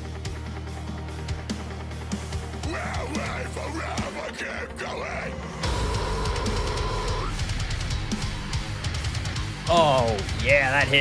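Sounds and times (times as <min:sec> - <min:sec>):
heavy metal song: 0:00.0 - 0:11.0.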